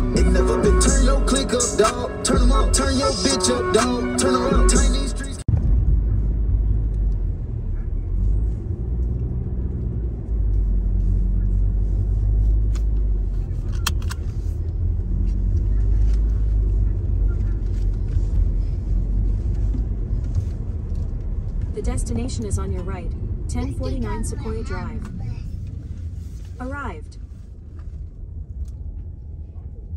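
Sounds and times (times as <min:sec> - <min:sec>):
music in car: 0:00.0 - 0:05.6
car road and engine rumble: 0:00.0 - 0:29.9.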